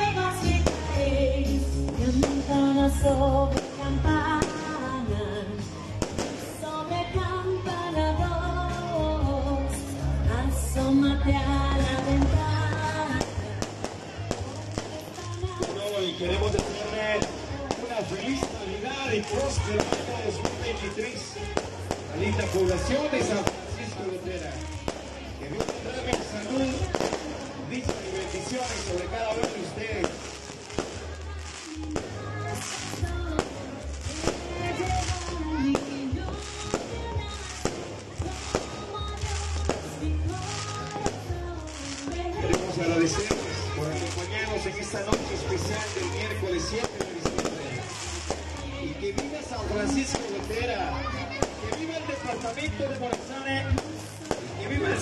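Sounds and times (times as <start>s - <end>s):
fireworks bangs and crackles: 0.0s - 6.9s, 10.8s - 55.0s
crowd voices: 0.0s - 55.0s.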